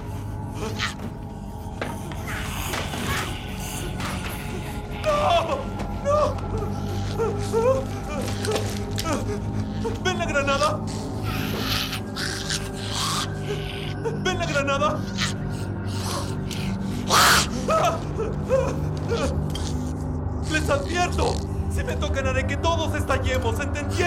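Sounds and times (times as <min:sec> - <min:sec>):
man gasping and whimpering: 0:00.0 - 0:19.9
low film score drone: 0:00.0 - 0:24.0.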